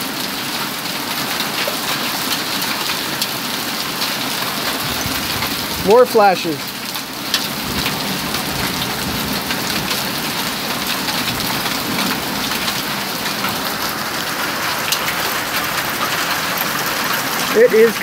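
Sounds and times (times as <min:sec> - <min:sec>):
hailstones ticking: 0:00.0 - 0:18.0
heavy rain on wooden deck: 0:00.0 - 0:18.0.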